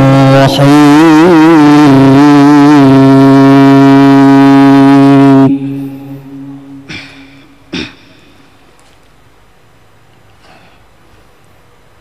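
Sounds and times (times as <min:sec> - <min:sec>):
man chanting melodic recitation: 0:00.0 - 0:06.9.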